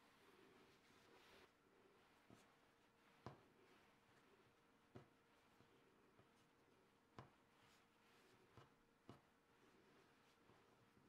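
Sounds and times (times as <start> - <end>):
dough tapping on marble countertop: 3.2 - 3.4, 7.1 - 7.4.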